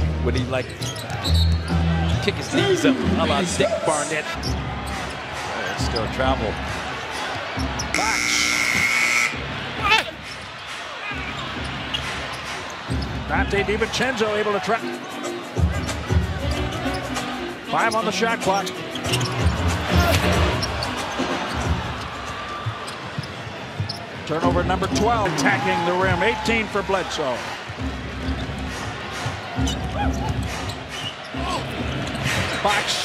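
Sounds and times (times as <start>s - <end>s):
crowd: 0.0s - 33.0s
sneakers squeaking on court: 0.6s - 2.2s, 17.9s - 25.2s, 27.6s - 32.6s.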